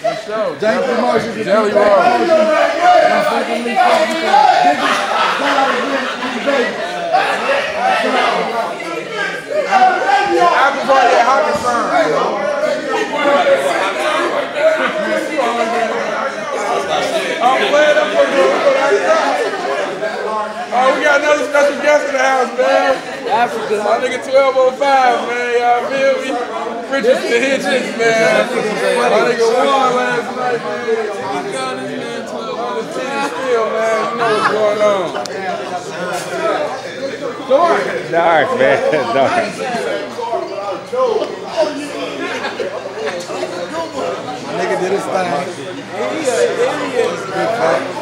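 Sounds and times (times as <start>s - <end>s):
men chattering: 0.0s - 48.0s.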